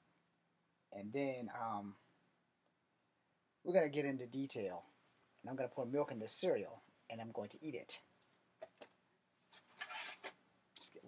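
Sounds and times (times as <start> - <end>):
rustling and scraping handling noise: 8.2 - 11.0.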